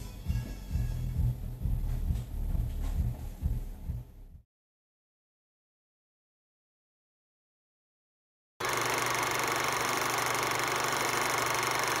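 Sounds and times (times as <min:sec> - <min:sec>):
small machine whirring: 0:08.6 - 0:12.0.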